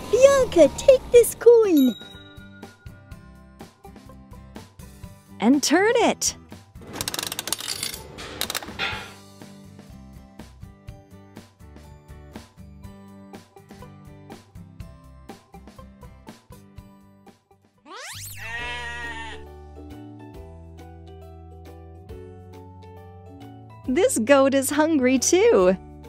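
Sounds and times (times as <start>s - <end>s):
children's background music: 0.0s - 6.6s, 8.9s - 26.0s
metal crank turning: 6.8s - 9.2s
feed pellets rattling: 6.9s - 8.6s
goat bleating: 17.9s - 19.5s.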